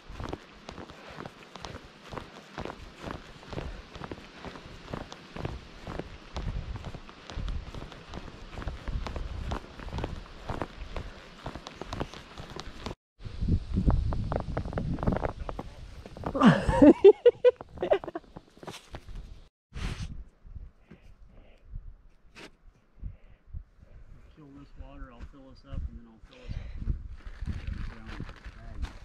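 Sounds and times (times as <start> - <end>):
footsteps crunching on dirt trail: 0.0 - 13.0, 24.7 - 29.0.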